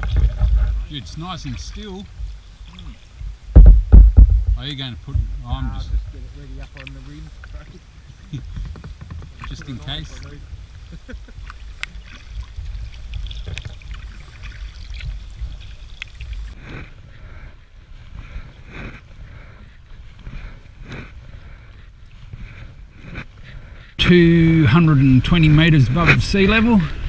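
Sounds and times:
low microphone rumble: 0.0 - 27.0
paddle strokes in water: 5.9 - 24.0.

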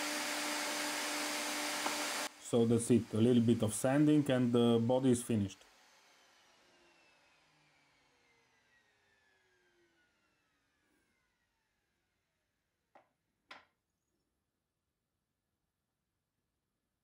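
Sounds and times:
router whine spinning down: 0.0 - 2.3, 2.9 - 12.2.

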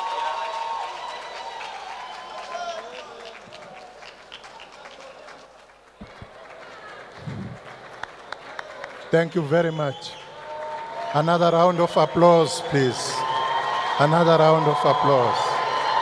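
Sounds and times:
audience clapping: 0.0 - 16.0.

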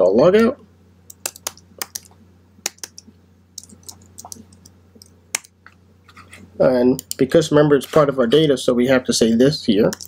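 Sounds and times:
computer keyboard typing: 1.1 - 5.6, 7.0 - 7.3.

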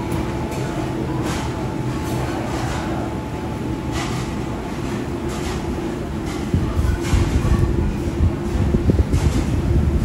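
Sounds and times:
ventilation fans humming: 0.0 - 10.0.

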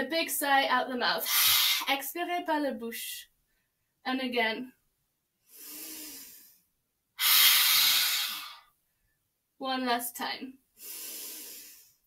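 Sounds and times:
woman inhaling through nose: 1.2 - 1.9, 5.5 - 6.6, 7.2 - 8.8, 10.8 - 12.0.

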